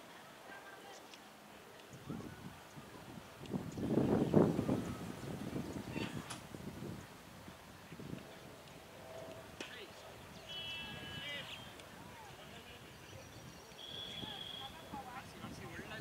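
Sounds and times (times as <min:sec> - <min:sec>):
fielders shouting and chattering: 0:07.6 - 0:16.0.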